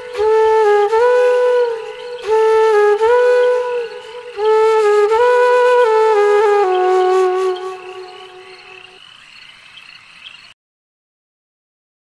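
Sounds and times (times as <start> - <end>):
flute background music: 0.0 - 9.0
chorus of calling frogs: 7.8 - 10.5.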